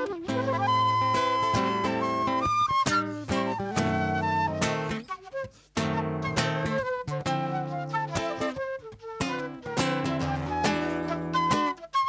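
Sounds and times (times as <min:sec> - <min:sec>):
flute melody: 0:00.0 - 0:12.0.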